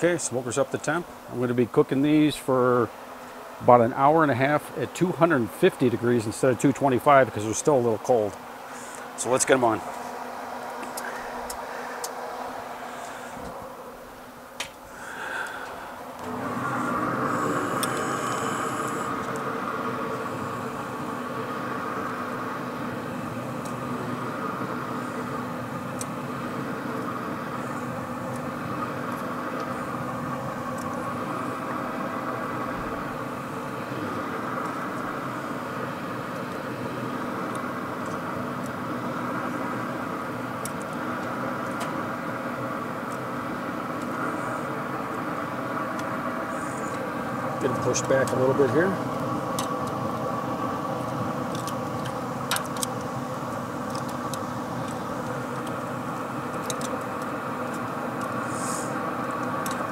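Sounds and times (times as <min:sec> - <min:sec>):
grill fan humming: 0:00.0 - 0:59.9.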